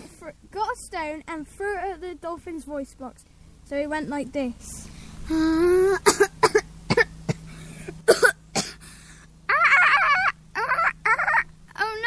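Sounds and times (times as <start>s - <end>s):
person imitating dolphin: 5.3s - 6.0s, 9.5s - 12.0s
coughing croaking sounds: 5.4s - 11.9s
warbling vocal squeaks: 9.5s - 12.0s.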